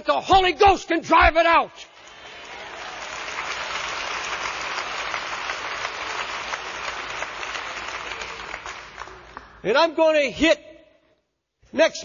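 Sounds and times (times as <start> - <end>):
congregation applauding: 1.9 - 9.8.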